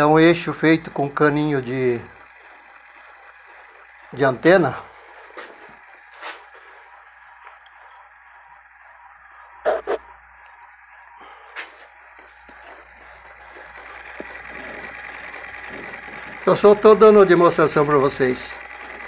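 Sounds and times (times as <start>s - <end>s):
magnet rotor whirring: 0.0s - 19.0s.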